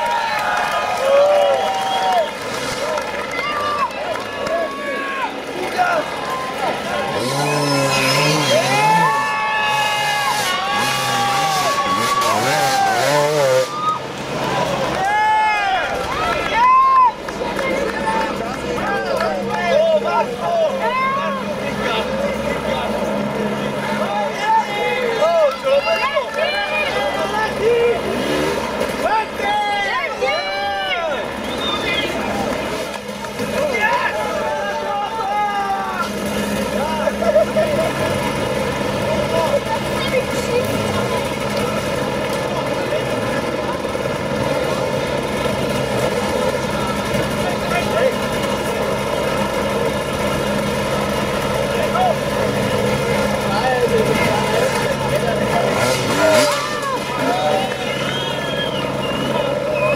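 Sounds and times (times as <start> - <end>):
dirt bike engines revving: 0.0 - 59.9
spectators shouting: 0.0 - 59.9.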